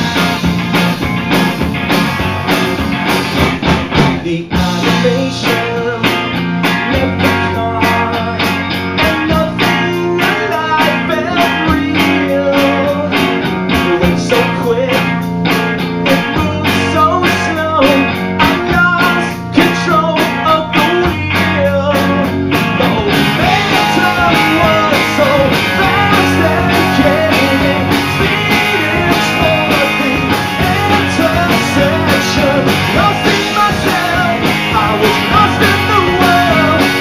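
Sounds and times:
rock band playing live: 0.0s - 37.0s.

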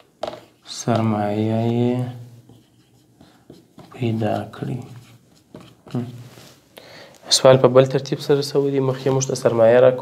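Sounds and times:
marker writing on whiteboard: 0.2s - 6.6s.

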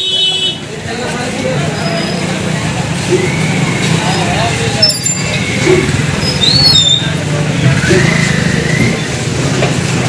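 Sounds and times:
crowd chatter: 0.0s - 10.0s
scooter engine humming: 1.4s - 10.0s.

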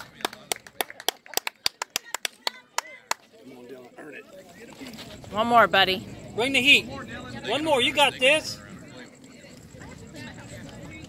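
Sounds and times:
person clapping quickly: 0.0s - 3.2s
faint voices: 0.0s - 11.0s.

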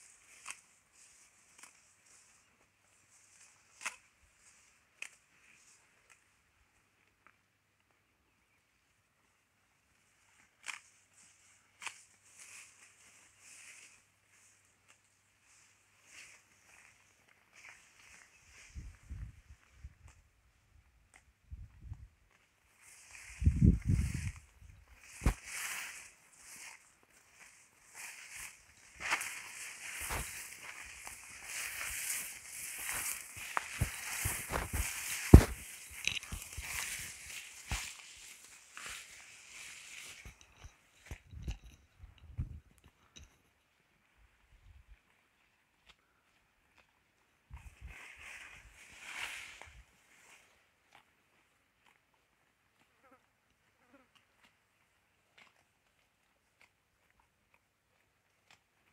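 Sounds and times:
cattle tearing and crunching grass: 0.0s - 2.4s, 22.3s - 41.2s, 48.3s - 58.9s
footsteps through grass: 0.0s - 7.3s, 9.9s - 41.4s, 44.3s - 58.9s
tall grass rustling: 0.0s - 7.4s, 9.1s - 43.3s, 47.4s - 52.0s.

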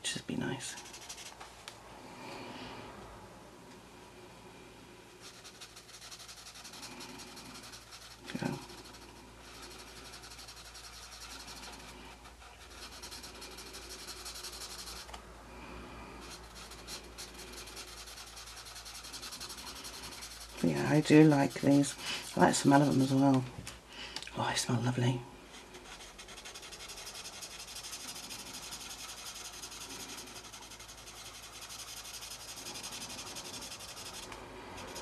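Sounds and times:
marker scratching on paper: 0.7s - 1.4s, 5.2s - 15.2s, 16.2s - 23.4s, 25.6s - 35.0s.

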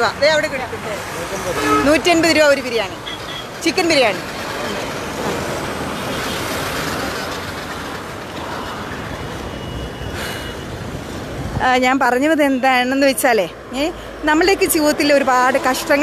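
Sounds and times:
highway traffic passing: 0.0s - 16.0s.

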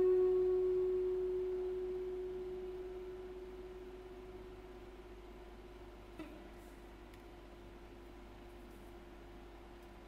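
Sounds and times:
electric guitar note ringing: 0.0s - 5.2s.

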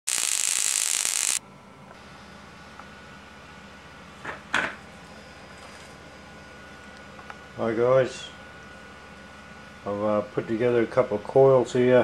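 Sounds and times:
electric arc crackling and hissing: 0.0s - 1.4s.

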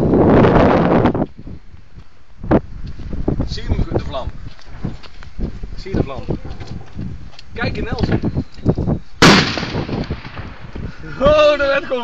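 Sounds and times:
loud explosion: 9.2s - 11.1s.

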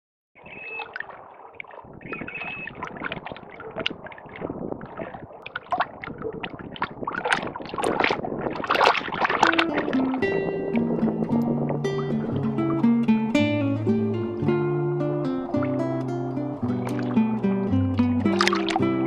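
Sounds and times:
small waves lapping at shore: 0.4s - 14.5s, 15.3s - 17.4s, 18.2s - 19.0s.

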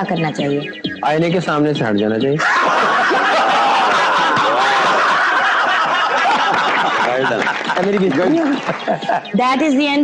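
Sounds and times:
group of people laughing: 2.4s - 9.7s.

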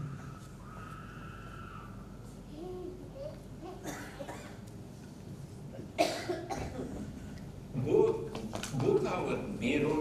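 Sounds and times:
man coughing: 6.0s - 7.0s.

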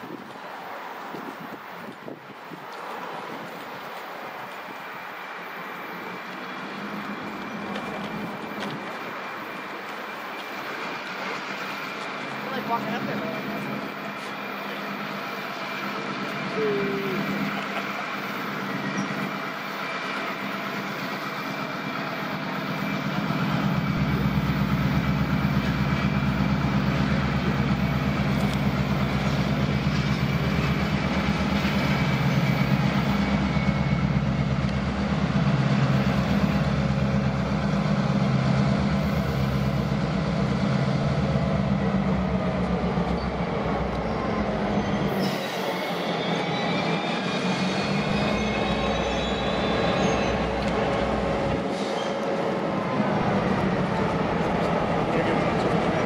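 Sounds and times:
diesel locomotive engines droning: 0.0s - 56.0s.

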